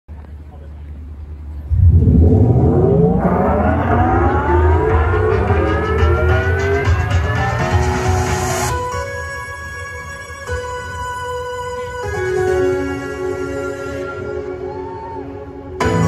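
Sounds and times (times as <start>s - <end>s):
sound system hum: 1.5s - 8.6s
loud low rumble: 1.6s - 7.4s
layered sweep rising in pitch: 1.7s - 8.7s.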